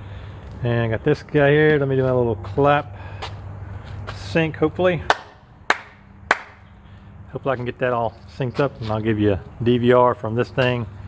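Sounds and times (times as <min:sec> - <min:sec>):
hand claps: 0:05.1 - 0:06.6.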